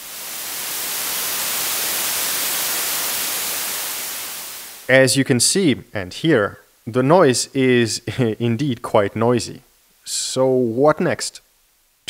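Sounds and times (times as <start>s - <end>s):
white noise hiss: 0.0s - 12.0s.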